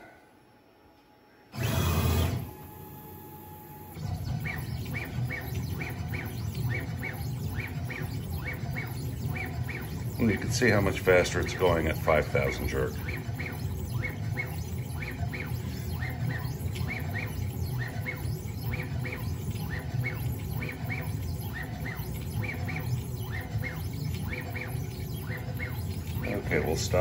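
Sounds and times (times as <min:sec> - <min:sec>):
stepper motors humming: 0:01.5 - 0:27.0
short chirping whines: 0:01.6 - 0:27.0.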